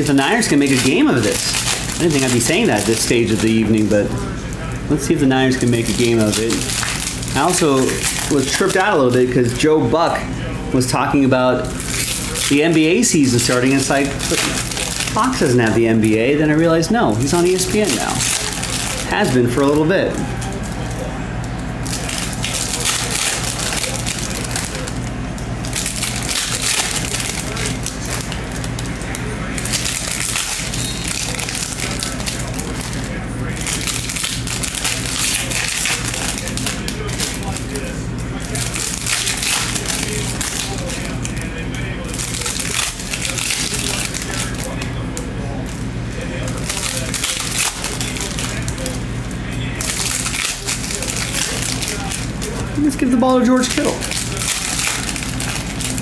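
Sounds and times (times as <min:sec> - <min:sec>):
foil wrappers crinkling and tearing: 0:00.0 - 0:56.0
steady low hum: 0:00.0 - 0:56.0.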